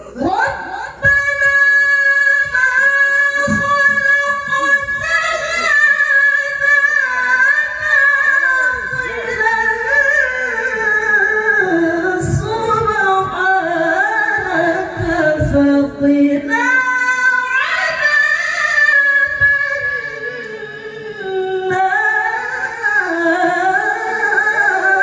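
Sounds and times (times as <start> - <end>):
woman's melodic recitation: 0.2 - 25.0.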